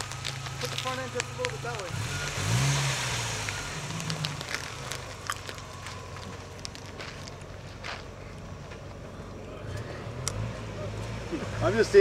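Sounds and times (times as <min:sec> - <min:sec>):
scuffing footsteps: 0:04.0 - 0:09.0.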